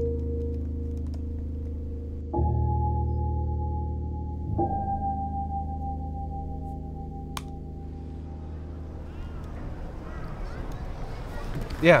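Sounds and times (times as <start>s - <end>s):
soft sustained ambient chord: 1.9s - 9.4s.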